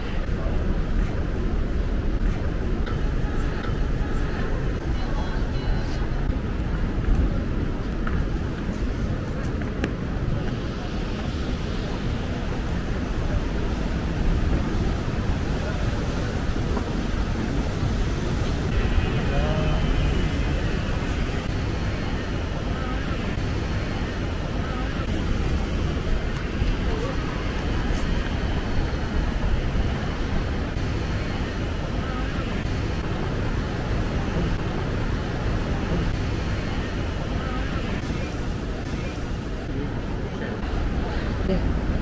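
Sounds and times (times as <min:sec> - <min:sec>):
faint voices: 0:00.0 - 0:42.0.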